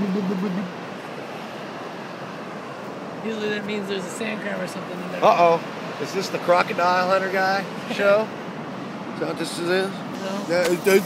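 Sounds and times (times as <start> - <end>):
wavering voice: 0.0 - 0.7
surf rushing: 0.0 - 11.0
wind: 0.0 - 11.0.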